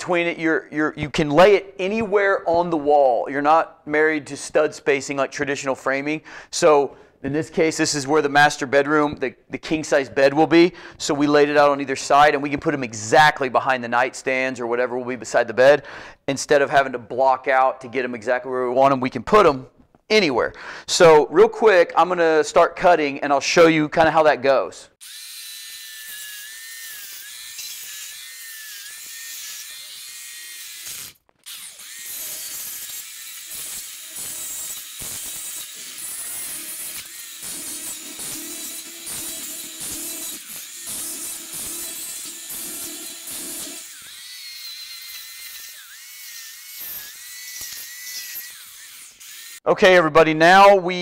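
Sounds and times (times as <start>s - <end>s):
electric chainsaw cutting foam: 25.0s - 49.7s.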